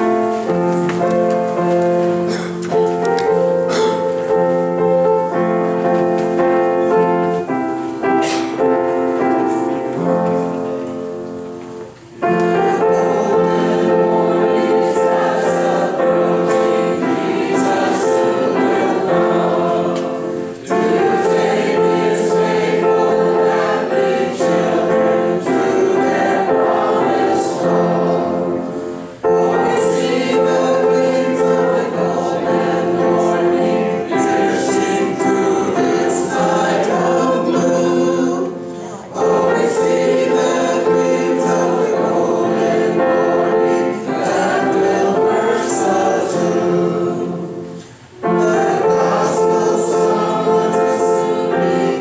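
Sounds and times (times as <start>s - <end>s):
congregation singing a hymn: 0.0s - 52.0s
piano accompaniment: 0.0s - 52.0s.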